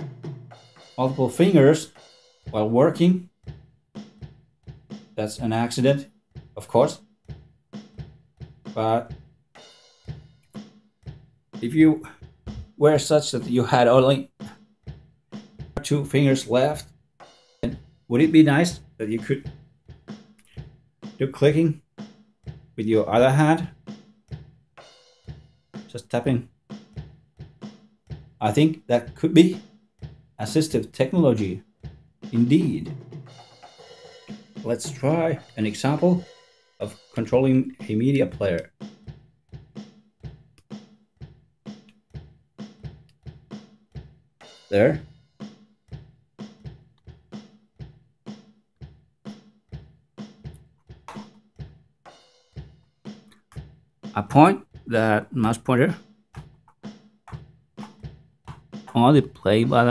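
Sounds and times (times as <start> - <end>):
drum kit beat: 0.0 - 59.9.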